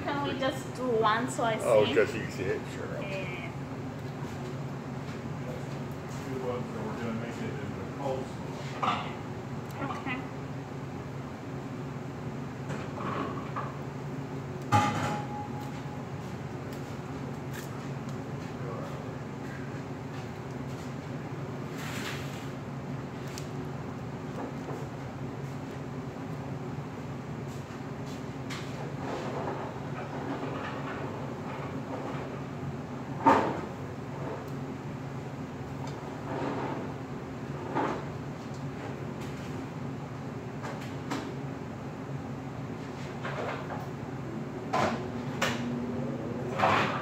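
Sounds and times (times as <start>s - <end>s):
kitchen machinery humming: 0.0s - 27.1s
loud metallic clank: 14.7s - 15.6s.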